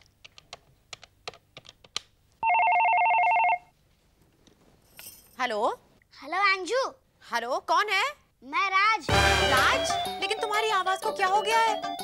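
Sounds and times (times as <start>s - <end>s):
electronic telephone ring: 2.4s - 3.7s.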